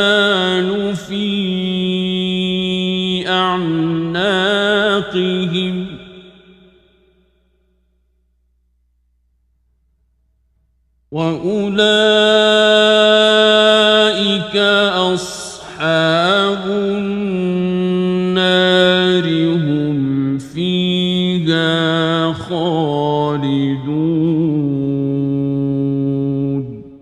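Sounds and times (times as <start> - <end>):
man reciting melodically: 0.0 - 6.5, 11.1 - 27.0.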